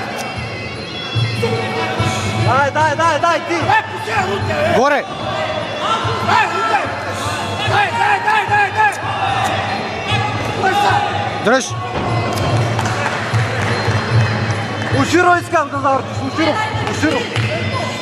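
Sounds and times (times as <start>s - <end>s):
men shouting instructions: 2.6s - 11.8s.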